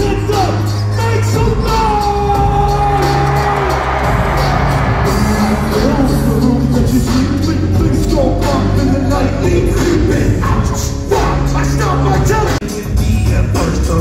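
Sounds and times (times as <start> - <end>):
live rap music over speakers: 0.0 - 14.0.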